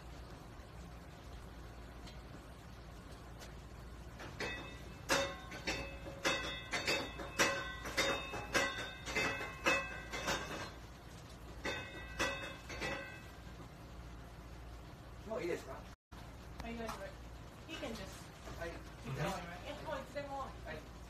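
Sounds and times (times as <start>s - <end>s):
metal kitchenware clinking: 4.1s - 10.9s, 11.5s - 13.4s.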